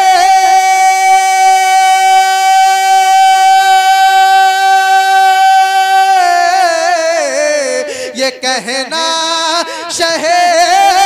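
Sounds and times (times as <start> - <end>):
man singing a long held note: 0.0 - 11.0.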